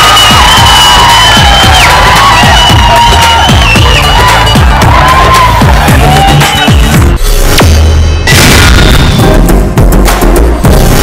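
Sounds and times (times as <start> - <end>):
deep bass boom: 6.8 - 11.0.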